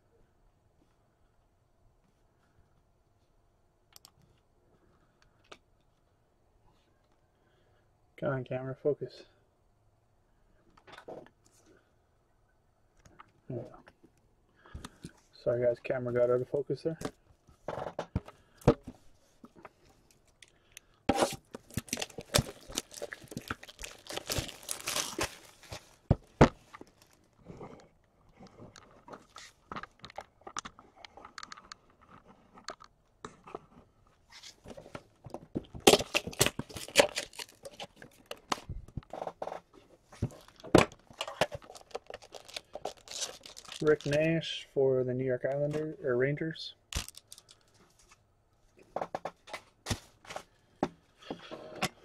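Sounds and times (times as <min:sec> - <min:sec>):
packaging tearing and crinkling: 0:21.1 - 0:26.0, 0:35.8 - 0:38.5, 0:40.2 - 0:44.3, 0:46.9 - 0:47.6.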